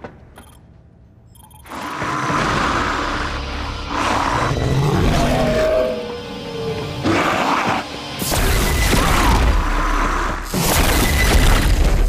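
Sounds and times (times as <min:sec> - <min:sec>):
deep rumbling horror score: 0:01.6 - 0:12.0.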